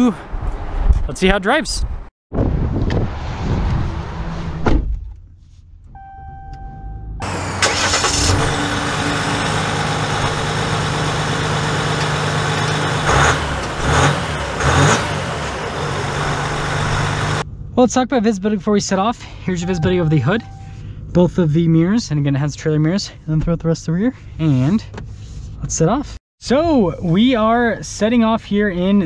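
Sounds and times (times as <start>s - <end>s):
diesel engine starting and idling: 6.8s - 17.7s
pitched chime beeping: 19.5s - 20.8s.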